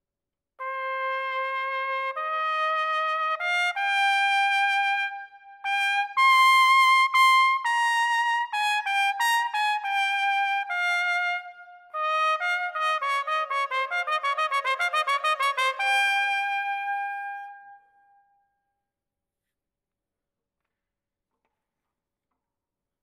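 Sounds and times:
trumpet playing: 0.6s - 18.1s.

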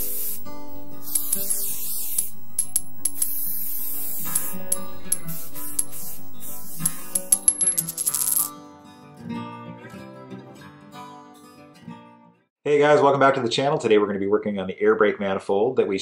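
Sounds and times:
hissing swishes: 0.0s - 2.6s, 3.2s - 7.3s
intro music with sustained tones: 0.0s - 8.5s
sharp clicks: 0.0s - 8.5s.

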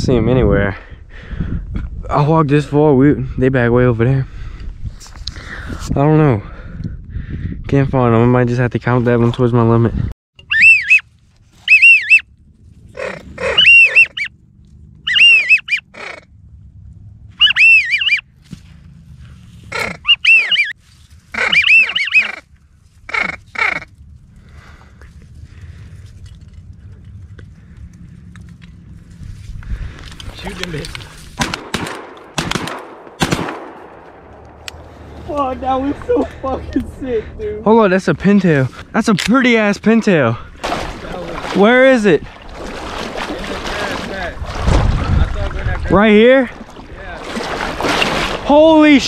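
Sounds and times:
duck call whistles: 10.4s - 11.0s, 11.6s - 12.2s, 13.0s - 14.3s, 15.0s - 16.2s, 17.4s - 18.2s, 19.7s - 22.4s, 23.1s - 23.9s
rustling in reeds: 20.7s - 24.3s.

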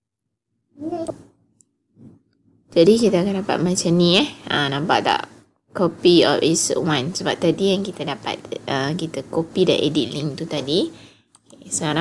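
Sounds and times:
woman speaking: 2.7s - 12.0s.

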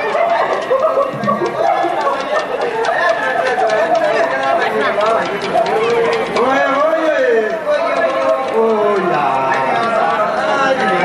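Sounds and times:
regular ticks: 0.0s - 11.0s.

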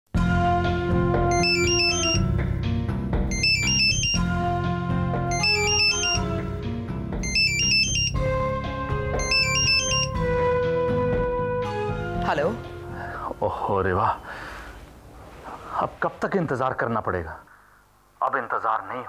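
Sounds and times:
phone ringtone beeps: 1.3s - 2.6s, 3.3s - 4.6s, 5.3s - 6.6s, 7.2s - 8.6s, 9.2s - 10.4s.

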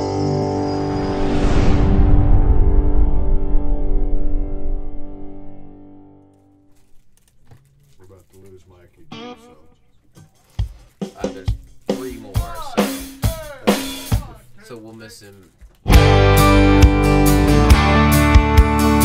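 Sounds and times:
person's voice: 11.2s - 15.5s.

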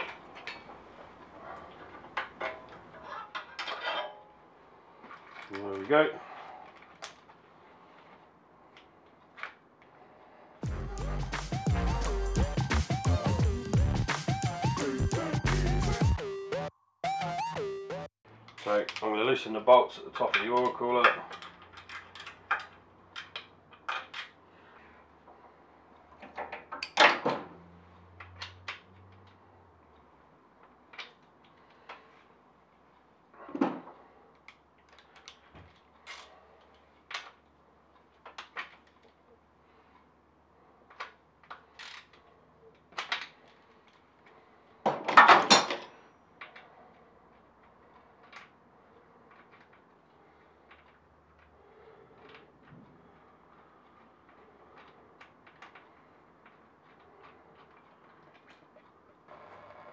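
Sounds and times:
tools clattering: 0.0s - 4.4s, 44.9s - 46.6s.

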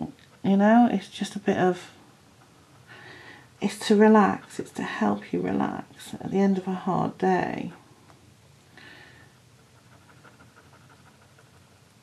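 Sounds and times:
gel pen scratching on paper: 3.7s - 5.2s.

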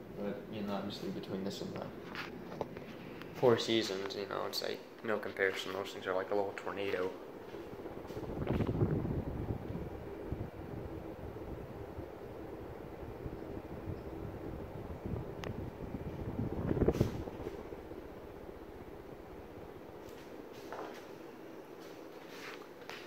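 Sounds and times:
ceiling fan running: 0.0s - 23.0s
wind gusts hitting microphone: 7.1s - 20.5s.

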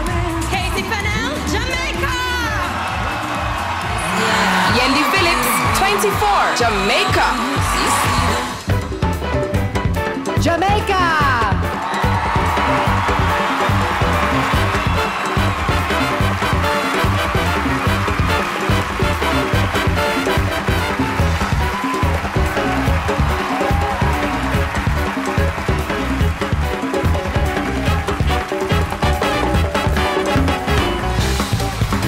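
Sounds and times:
upbeat stage-band music: 0.0s - 32.0s.

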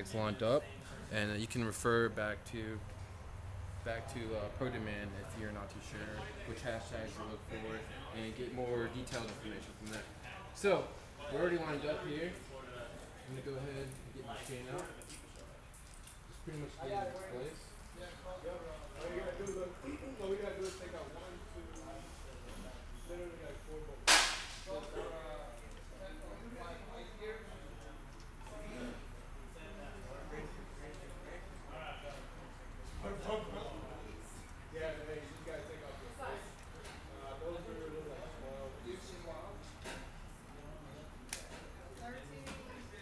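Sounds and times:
sharp loud crack: 24.1s - 24.6s.

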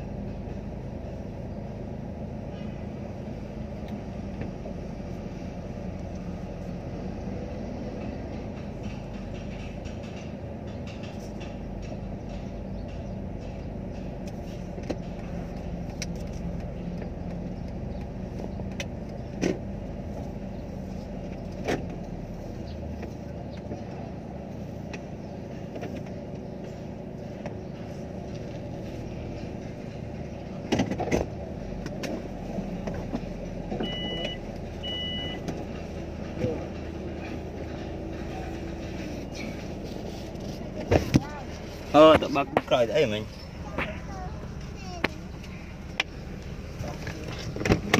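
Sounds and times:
car engine idling: 0.0s - 47.9s
sharp clicks and knocks: 7.8s - 19.7s, 25.7s - 42.8s, 45.0s - 47.9s.

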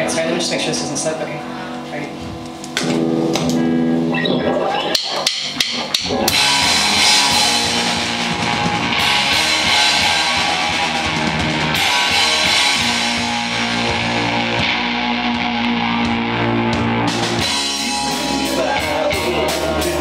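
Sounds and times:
electric bass: 0.0s - 20.0s
electric guitar: 0.0s - 20.0s
drum hits: 5.0s - 14.4s.

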